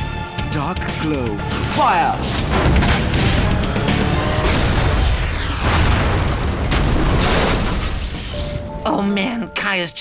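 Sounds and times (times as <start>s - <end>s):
dramatic background music: 0.0s - 10.0s
energy blast and explosion: 2.4s - 8.4s.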